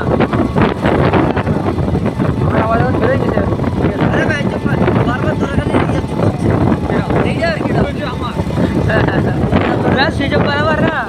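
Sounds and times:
motorcycle engine at road speed: 0.0s - 11.0s
wind rumble on microphone: 0.0s - 11.0s
person talking: 2.4s - 11.0s.

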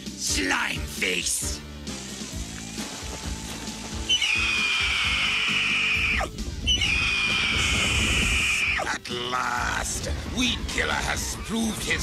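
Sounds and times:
dramatic cartoon music: 0.0s - 12.0s.

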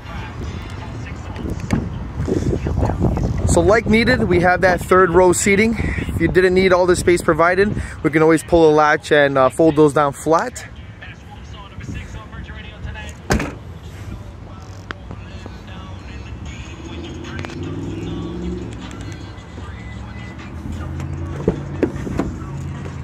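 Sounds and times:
car door latch clicks: 13.3s - 13.6s
liftgate shutting with thump: 13.3s - 13.7s.

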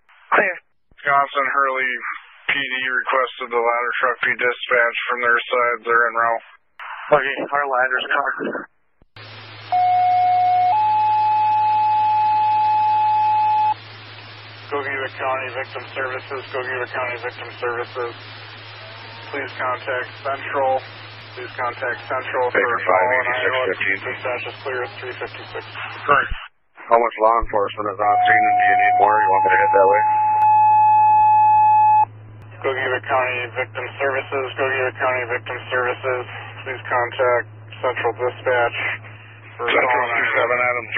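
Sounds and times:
radio hiss and hum: 0.0s - 40.9s.

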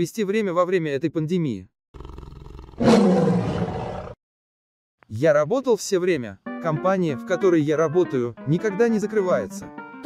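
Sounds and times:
roar sound effect: 2.0s - 4.2s.

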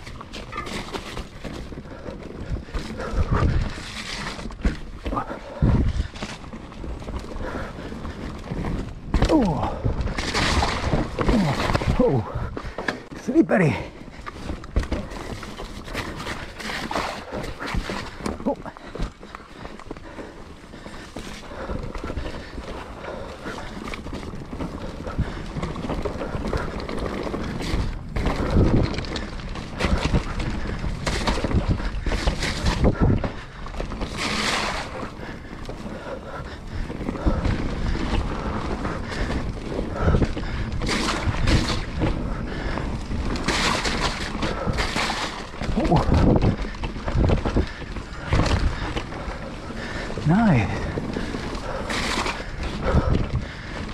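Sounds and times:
bike rattling and knocking: 0.0s - 53.9s
bike tyres on dirt trail: 0.0s - 53.9s
wind buffeting microphone: 1.7s - 6.3s, 24.4s - 53.9s.

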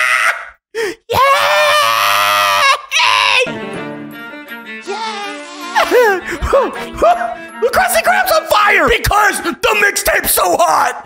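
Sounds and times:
high cartoon voice shouting: 2.5s - 3.5s
backing music: 3.5s - 9.1s.

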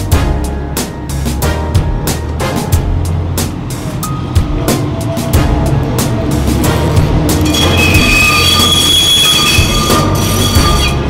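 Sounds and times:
low train rumble: 0.0s - 11.0s
wheels squealing on rails: 3.7s - 11.0s.

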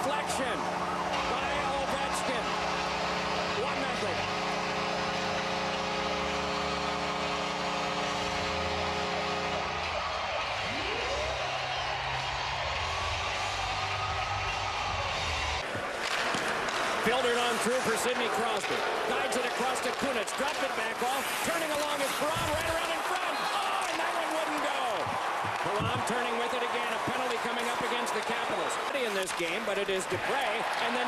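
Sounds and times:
crowd cheering: 0.0s - 31.0s.

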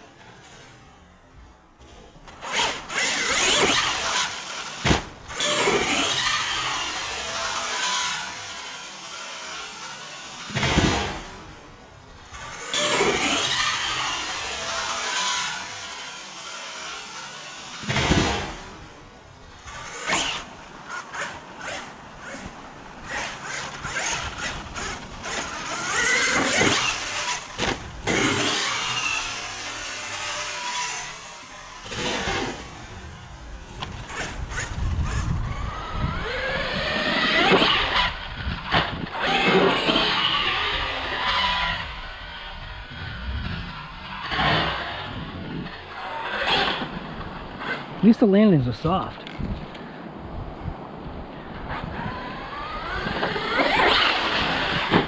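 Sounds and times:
electric motor whine: 0.0s - 48.1s, 51.0s - 55.0s.

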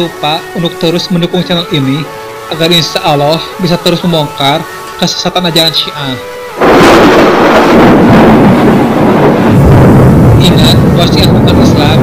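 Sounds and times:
thunder rumbling: 6.6s - 12.0s.

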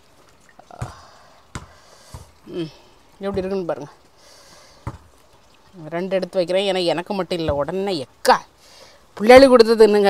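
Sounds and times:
woman speaking: 2.5s - 4.0s, 5.8s - 8.5s, 9.2s - 10.0s.

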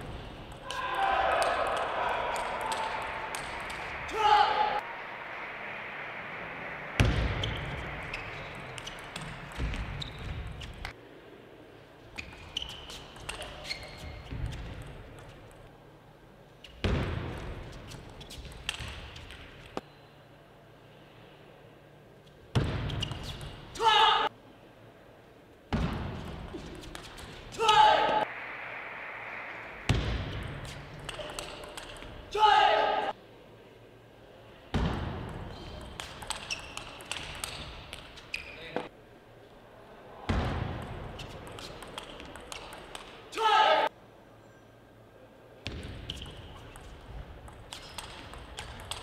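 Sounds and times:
player shouting: 0.6s - 3.3s, 4.0s - 4.8s, 27.6s - 28.3s, 32.3s - 33.1s, 43.3s - 43.9s
shoe squeaks: 7.4s - 10.9s, 12.1s - 14.3s, 35.5s - 38.9s, 47.7s - 48.2s
table tennis ball clicking: 35.3s - 38.2s, 40.8s - 43.2s, 46.2s - 49.0s.

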